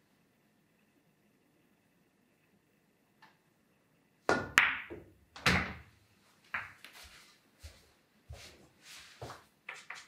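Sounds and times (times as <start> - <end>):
pool balls clicking: 4.3 - 5.9.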